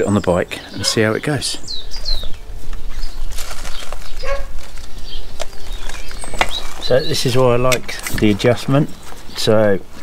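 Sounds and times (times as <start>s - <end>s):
fabric bag rustling: 2.3s - 7.4s.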